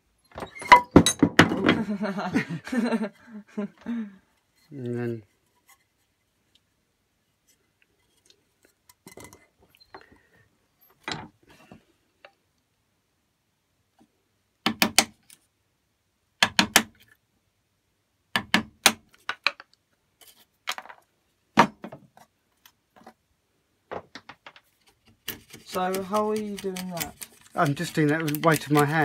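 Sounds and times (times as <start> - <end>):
wood chisel paring wood: 14.6 - 15.2, 16.4 - 17.0, 18.4 - 19.2, 25.0 - 29.0
wood fibres cracking: 24.8 - 29.0.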